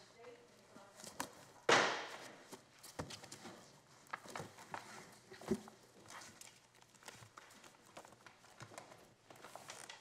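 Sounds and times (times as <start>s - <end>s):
papers and binders rustling: 0.2s - 10.0s.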